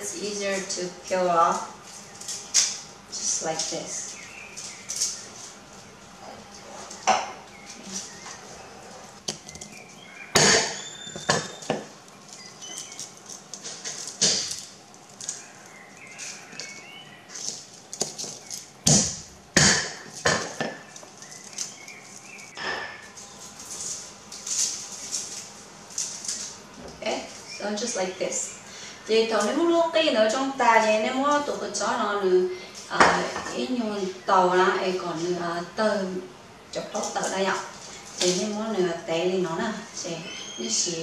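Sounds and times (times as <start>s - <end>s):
garlic skins crackling: 0.2s - 28.5s.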